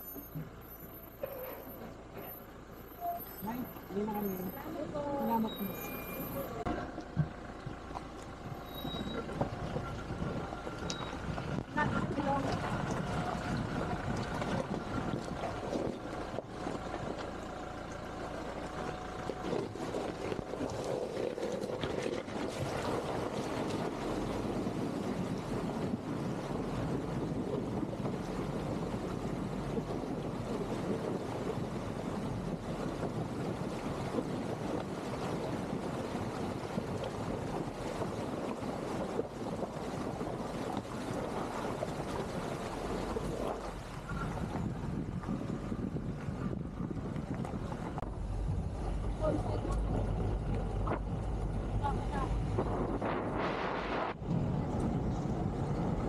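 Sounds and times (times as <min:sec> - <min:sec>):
river water splashing around tyres: 0:00.0 - 0:56.0
vehicle rumbling on paved road: 0:00.0 - 0:56.0
wind on microphone: 0:09.0 - 0:17.2, 0:19.1 - 0:56.0.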